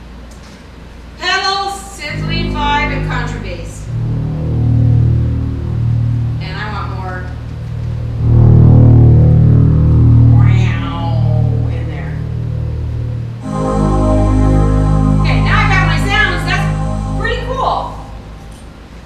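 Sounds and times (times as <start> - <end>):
deep sustained bass: 2.0 - 19.0
electronic organ choir chords: 2.1 - 19.0.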